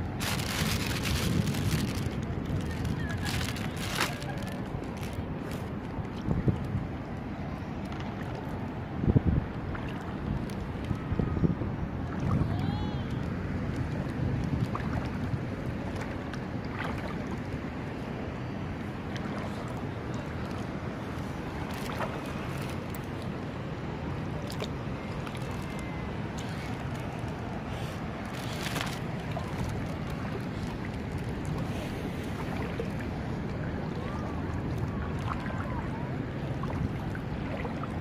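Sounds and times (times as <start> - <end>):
footsteps wading through water: 0.0 - 6.8, 13.3 - 23.4, 24.2 - 38.0
wind rumbling on microphone: 0.0 - 38.0.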